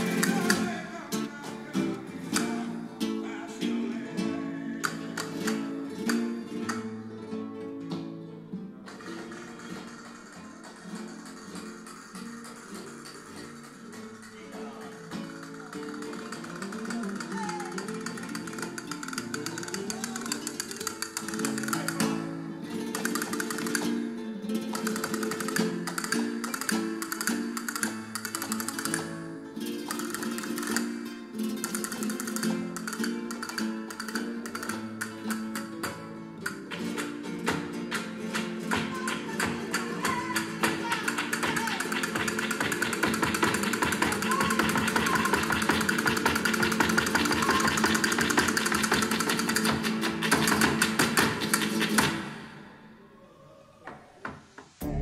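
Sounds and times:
flamenco guitar music: 0:00.0 - 0:55.0.

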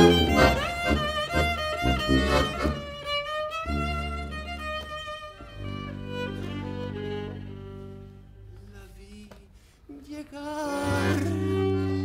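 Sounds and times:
rhythmic accompaniment: 0:00.0 - 0:08.2
violin melody with sliding notes: 0:00.0 - 0:08.6, 0:10.7 - 0:12.0
bass: 0:00.0 - 0:09.0, 0:10.8 - 0:12.0.

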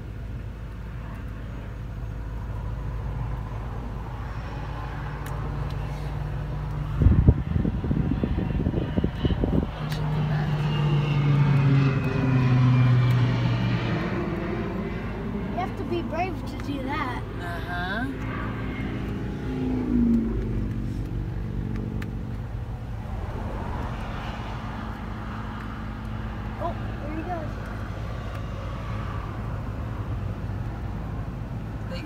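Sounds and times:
airplane engine passing overhead: 0:00.0 - 0:32.0.

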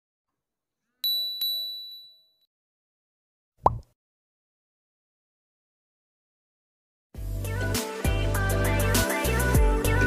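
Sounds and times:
phone notification dings: 0:01.0 - 0:02.4.

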